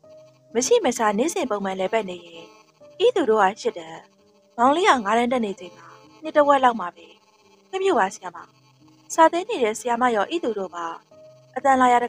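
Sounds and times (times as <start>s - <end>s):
faint background music: 0.0s - 12.0s
narrator speaking: 0.6s - 4.0s, 4.6s - 7.1s, 7.8s - 8.4s, 9.1s - 11.0s, 11.6s - 12.0s.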